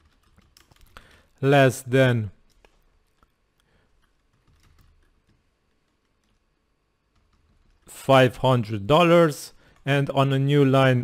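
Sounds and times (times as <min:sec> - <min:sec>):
computer keyboard typing: 0:00.0 - 0:01.4, 0:02.4 - 0:07.9.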